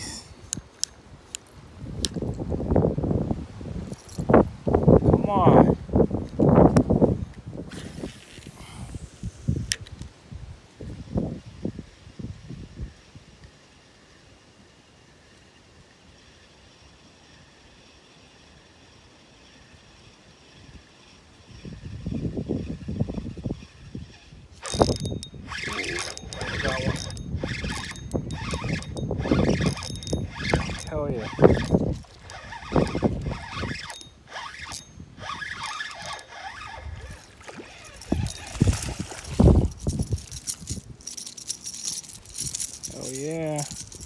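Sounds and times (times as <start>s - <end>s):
spinning reel clicking and rattling: 15.8s - 44.0s.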